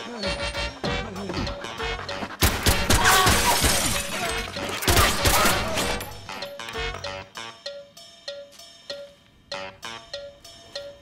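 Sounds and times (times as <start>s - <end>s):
glass shattering: 2.4s - 6.5s.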